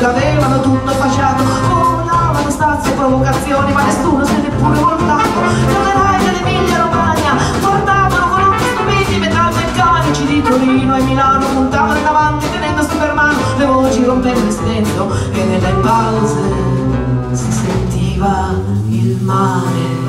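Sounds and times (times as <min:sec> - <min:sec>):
double bass: 0:00.0 - 0:20.0
drums: 0:00.0 - 0:20.0
guitar: 0:00.0 - 0:20.0
trumpet: 0:03.8 - 0:13.4, 0:15.6 - 0:17.9.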